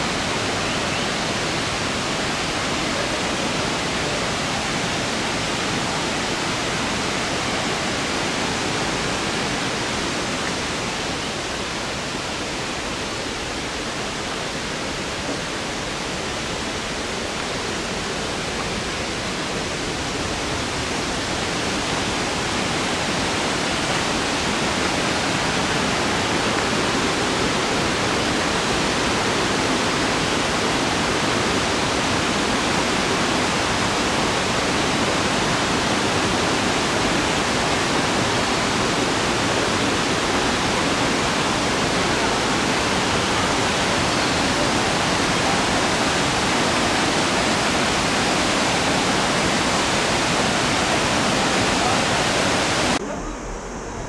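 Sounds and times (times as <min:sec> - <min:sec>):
waterfall rushing: 0:00.0 - 0:54.0.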